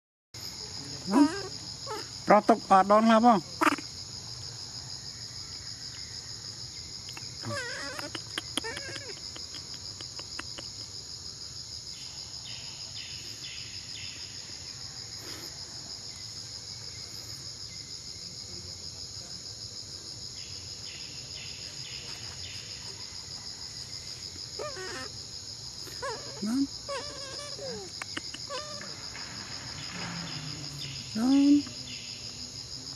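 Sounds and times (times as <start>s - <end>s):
high-pitched insect chorus: 0.4s - 32.9s.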